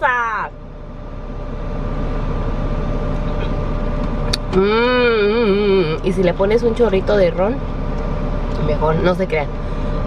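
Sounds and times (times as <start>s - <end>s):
car engine hum inside cabin: 0.0s - 10.0s
faint steady whine: 0.0s - 10.0s.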